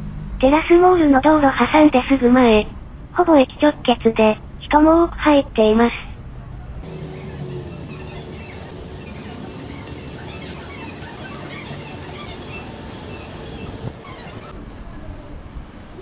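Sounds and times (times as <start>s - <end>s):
traffic: 0.0s - 16.0s
rail rumble: 6.1s - 16.0s.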